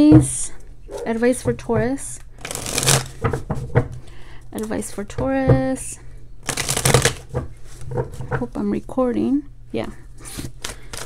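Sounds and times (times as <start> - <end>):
cards sliding during shuffle: 2.4 - 3.2, 6.4 - 7.9.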